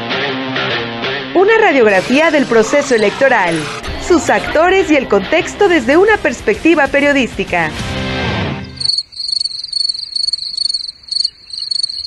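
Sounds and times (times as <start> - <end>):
cricket chirping: 8.6 - 12.0.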